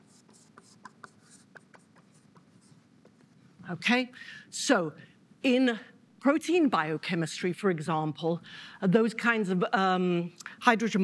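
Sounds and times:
chalk scratching on blackboard: 0.0 - 3.4.

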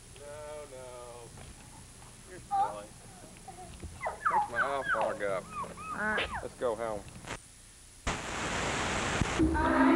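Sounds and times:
videotape static hiss: 0.0 - 9.9.

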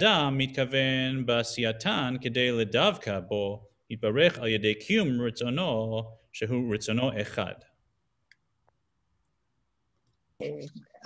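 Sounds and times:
man speaking: 0.0 - 7.8
woman speaking: 10.4 - 11.0.

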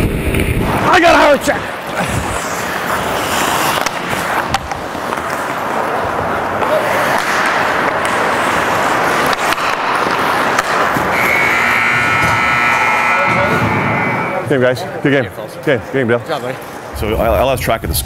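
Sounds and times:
skates scraping on ice: 0.6 - 12.8
hockey sticks and puck clicking: 2.6 - 12.6
rink horn sounding: 11.1 - 14.6.

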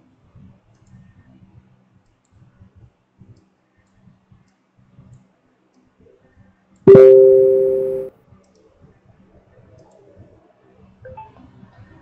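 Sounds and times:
low steady hum: 6.9 - 8.1.

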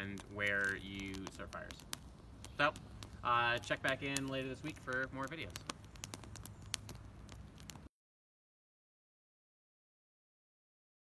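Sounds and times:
low outdoor background: 0.0 - 7.9
sharp fire pops: 0.0 - 7.9
wood fire crackling: 0.0 - 7.9.

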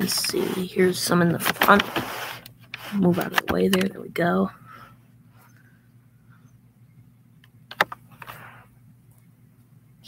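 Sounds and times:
sharp clicks: 7.4 - 8.0.

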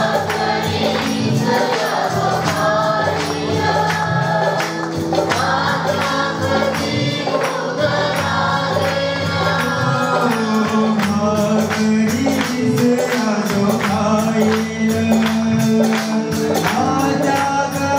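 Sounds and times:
group singing worship song: 0.0 - 17.9
instrumental backing: 0.0 - 17.9
steady percussion beat: 0.0 - 17.9.

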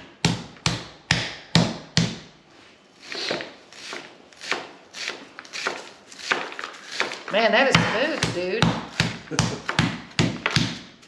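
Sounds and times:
knife cutting onion on board: 3.0 - 10.9.

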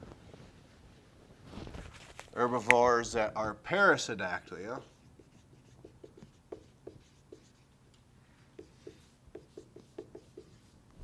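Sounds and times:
marker squeaking on whiteboard: 4.8 - 7.8, 8.6 - 10.8.

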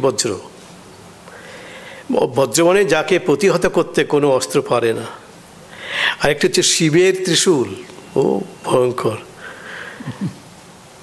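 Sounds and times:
intake of breath: 1.3 - 2.1, 5.7 - 6.2, 9.4 - 10.0
man speaking into a microphone: 2.1 - 5.2, 6.2 - 9.3.

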